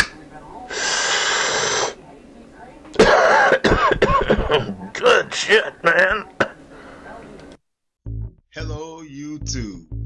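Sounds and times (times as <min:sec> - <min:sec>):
person coughing: 0:03.0 - 0:06.6.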